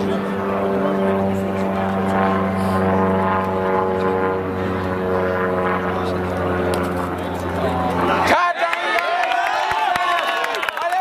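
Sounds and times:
engine drone: 0:00.0 - 0:08.4.

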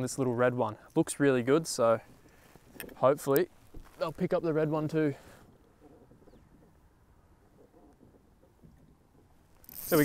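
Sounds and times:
fishing reel drag buzzing: 0:09.6 - 0:10.0.

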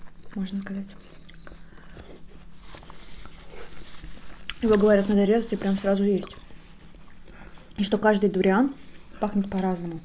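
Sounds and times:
wet chewing of fruit: 0:00.0 - 0:05.1, 0:06.2 - 0:07.8.

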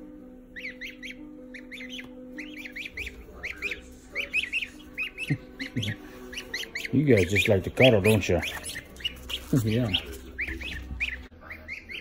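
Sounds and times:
goslings peeping: 0:00.5 - 0:12.0.

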